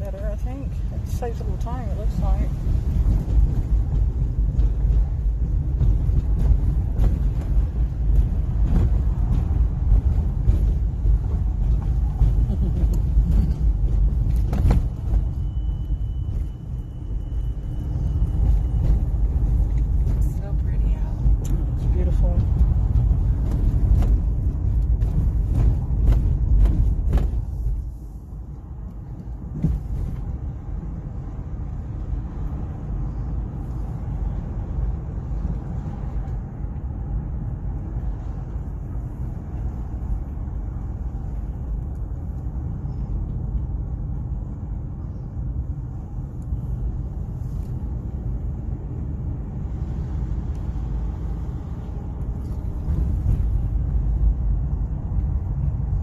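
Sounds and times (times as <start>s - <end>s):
car road noise rumble: 0.0s - 56.0s.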